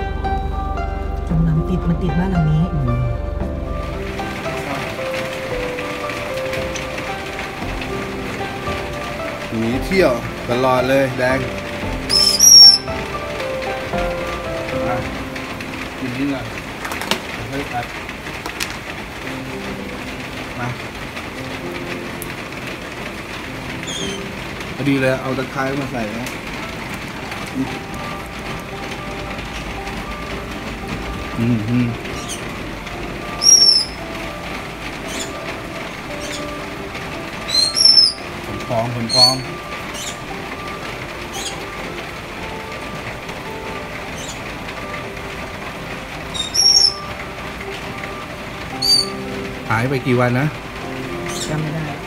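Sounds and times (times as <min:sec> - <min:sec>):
soft melody: 0:00.0 - 0:52.0
parrots chirping: 0:03.8 - 0:14.7, 0:23.7 - 0:24.7, 0:31.0 - 0:41.9, 0:42.6 - 0:49.6, 0:51.0 - 0:51.7
parrot shrill calls: 0:12.1 - 0:12.9, 0:23.8 - 0:24.3, 0:32.2 - 0:32.4, 0:33.4 - 0:34.0, 0:37.4 - 0:38.3, 0:39.1 - 0:40.2, 0:44.2 - 0:44.4, 0:46.3 - 0:47.1, 0:48.8 - 0:49.2, 0:51.3 - 0:51.5.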